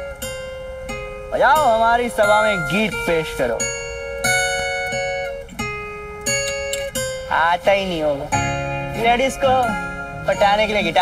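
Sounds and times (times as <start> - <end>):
guitar strumming chords: 0.0 - 11.0.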